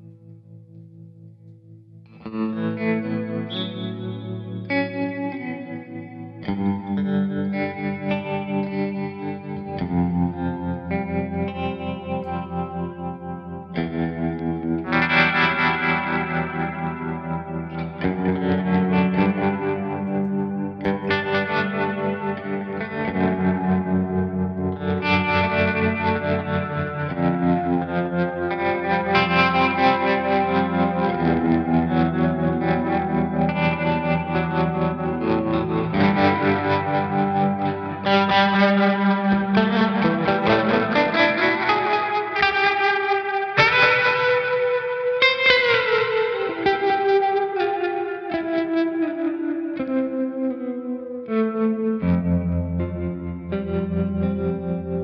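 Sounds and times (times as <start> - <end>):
electric guitar chords with tremolo: 0.0 - 55.0.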